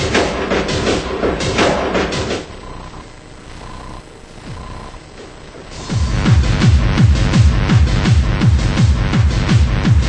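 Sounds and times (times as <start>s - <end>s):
electronic breakcore music: 0.0s - 10.0s.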